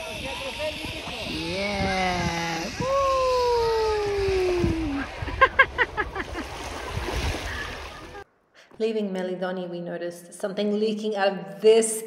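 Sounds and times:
person whooping: 1.4 - 5.2.

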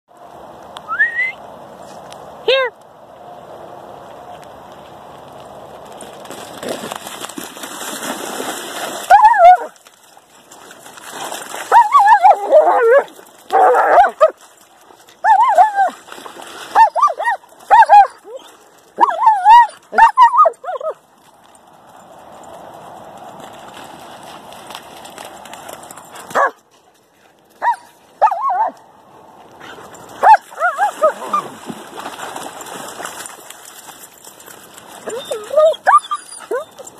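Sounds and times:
water splashing: 5.9 - 20.3, 29.8 - 36.9
dogs barking and yipping: 9.0 - 9.8, 11.7 - 14.5, 15.1 - 16.0, 16.7 - 21.0, 26.1 - 26.6, 27.6 - 28.8, 29.6 - 31.6, 35.0 - 36.9.

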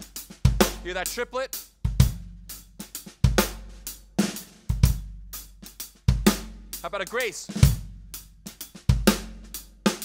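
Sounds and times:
drum kit playing rock waltz: 0.0 - 10.0.

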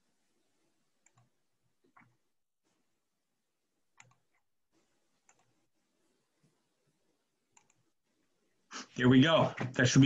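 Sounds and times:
faint computer mouse clicks: 1.0 - 1.3, 4.0 - 4.4, 7.6 - 7.8.

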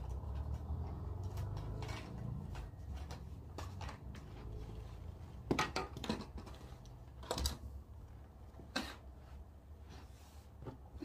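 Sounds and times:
handling knocks and rustles: 0.0 - 11.0.

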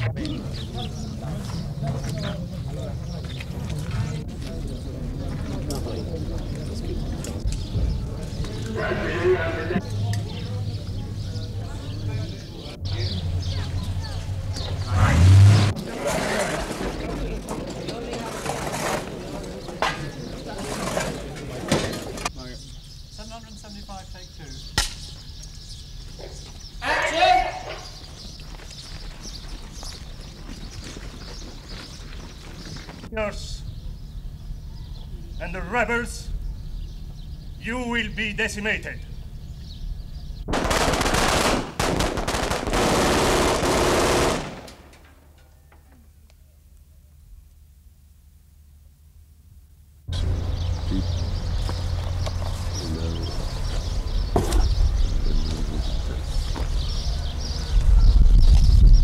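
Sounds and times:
hubbub of voices: 0.0 - 28.4
automatic gunfire bursts: 40.5 - 44.9
gunfire echo: 40.5 - 45.1.

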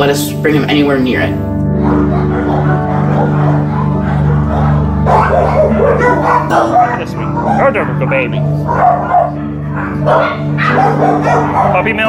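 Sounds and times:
background music with low notes: 0.0 - 12.0
dogs barking and yipping: 1.7 - 12.0.

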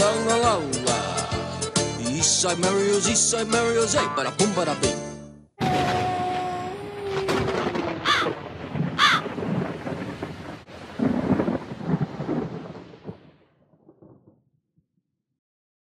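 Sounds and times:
rolling thunder rumble: 5.6 - 14.4
crow cawing: 8.0 - 8.4, 9.0 - 9.4.

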